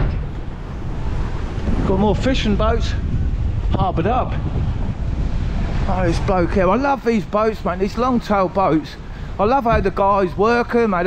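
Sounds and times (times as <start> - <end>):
choppy sea: 0.0 - 11.0
wind buffeting microphone: 0.0 - 11.0
man's voice: 1.8 - 3.1, 3.7 - 4.4, 5.9 - 11.0.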